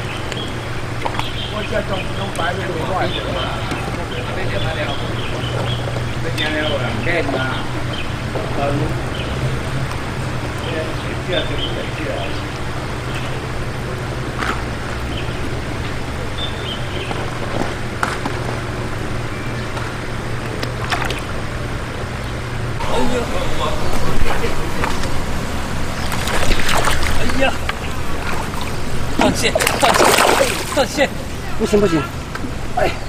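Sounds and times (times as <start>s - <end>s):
steady low hum: 0.0s - 33.0s
fish thrashing and splashing: 20.6s - 21.4s, 25.7s - 31.2s.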